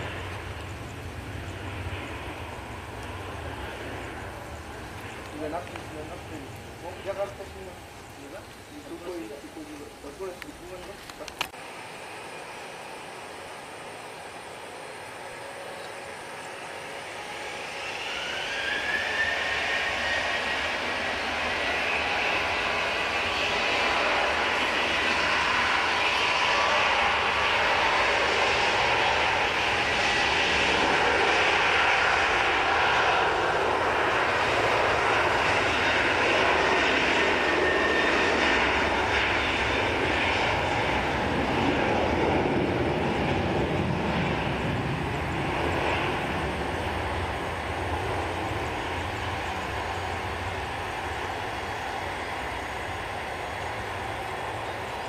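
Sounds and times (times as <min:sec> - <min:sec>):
jet engines spooling up: 0:00.0 - 0:55.0.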